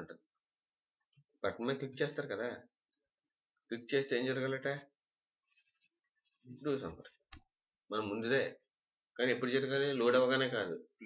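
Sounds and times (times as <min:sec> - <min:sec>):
man speaking: 0:06.4 - 0:07.2.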